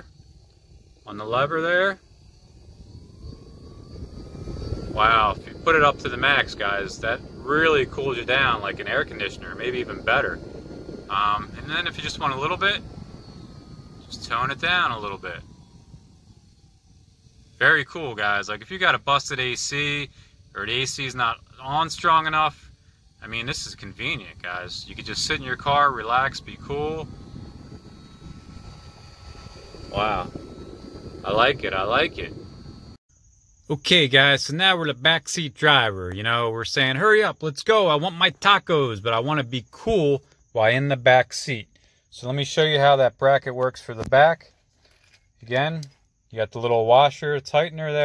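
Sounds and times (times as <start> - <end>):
fan motor whine: 0.0 - 33.0
air rushing from fan blades: 2.0 - 33.0.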